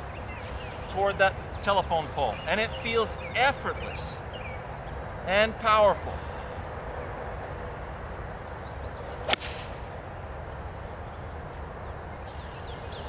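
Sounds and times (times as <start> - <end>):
background hiss: 8.4 - 10.6
golf club striking ball: 9.1 - 10.1.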